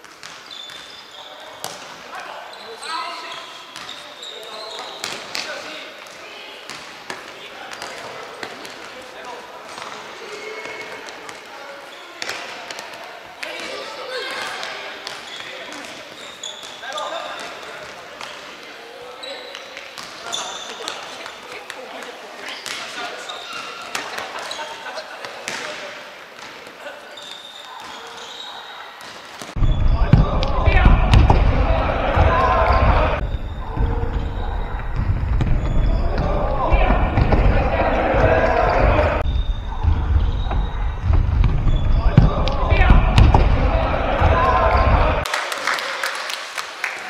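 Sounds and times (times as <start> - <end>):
ball kicked and bouncing on wood: 29.6 - 45.2
heavy low rumble: 29.6 - 45.2
players calling out: 29.6 - 45.3.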